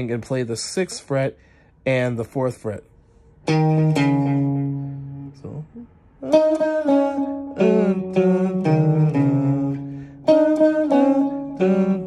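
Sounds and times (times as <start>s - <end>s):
electric guitar riff: 3.4s - 12.0s.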